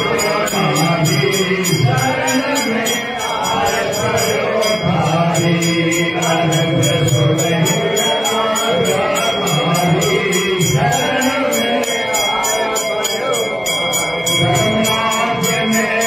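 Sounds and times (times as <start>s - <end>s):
men chanting a hymn: 0.0s - 16.0s
ringing metal percussion: 0.0s - 16.0s.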